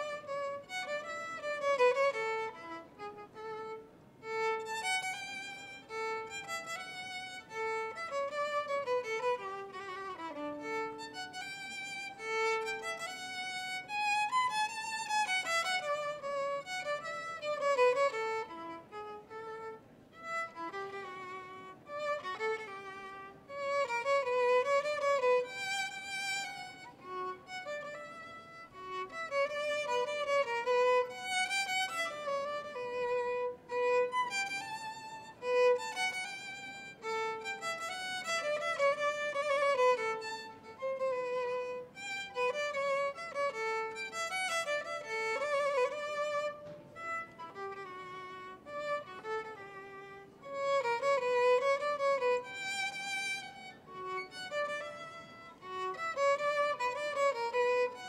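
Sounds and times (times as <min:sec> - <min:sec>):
violin melody: 0:00.0 - 0:58.0.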